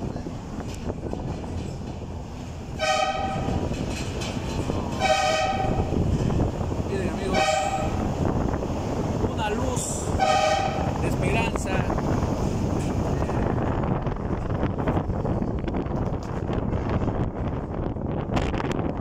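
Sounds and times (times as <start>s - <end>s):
vehicle rumbling in a tunnel: 0.0s - 19.0s
vehicle horn blasts: 2.8s - 3.6s, 5.0s - 5.9s, 7.3s - 8.0s, 10.2s - 10.9s.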